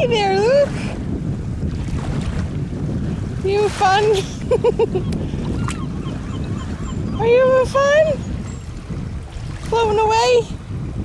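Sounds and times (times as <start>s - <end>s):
water lapping: 0.0s - 11.0s
wind rumbling on microphone: 0.0s - 11.0s.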